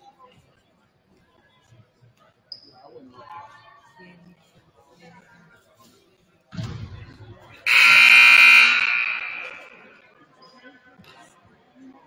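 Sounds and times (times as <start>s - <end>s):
scoreboard horn: 7.7s - 10.0s.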